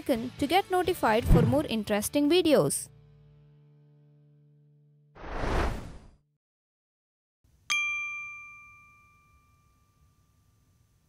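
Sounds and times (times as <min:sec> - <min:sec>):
bright chime ringing: 0:07.7 - 0:10.6.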